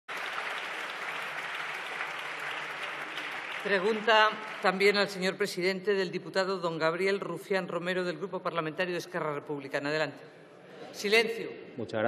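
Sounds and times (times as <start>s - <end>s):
crowd applauding: 0.0s - 5.5s.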